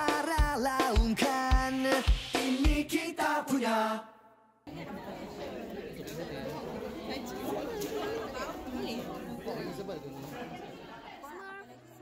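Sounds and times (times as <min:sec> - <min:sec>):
babble of overlapping voices: 0:04.7 - 0:12.0.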